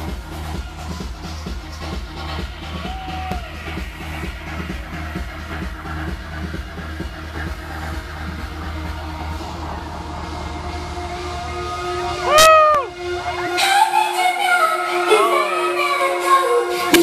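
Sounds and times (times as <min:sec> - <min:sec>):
electronic dance music: 0:00.0 - 0:17.0.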